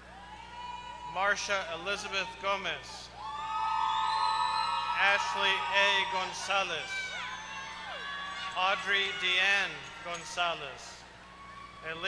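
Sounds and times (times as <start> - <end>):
long high-pitched whoop: 0.1 - 1.3, 3.2 - 9.2, 11.4 - 11.8
audience cheering: 3.2 - 12.0.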